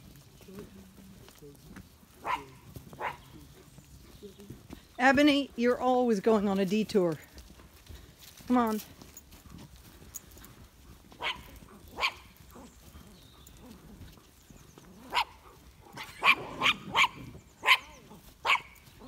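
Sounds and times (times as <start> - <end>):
small dog barking: 2.2 - 3.4, 11.1 - 12.7, 15.0 - 18.8.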